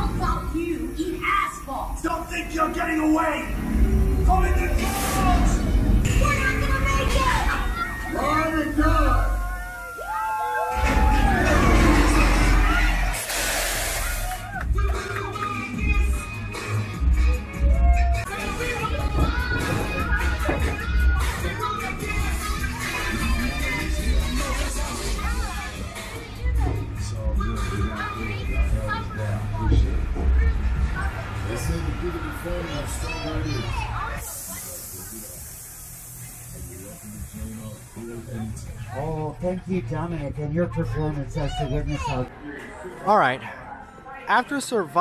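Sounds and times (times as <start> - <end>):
loud crash: 10.8 - 14.2
steady hiss: 13.2 - 14.3, 34.2 - 38.8.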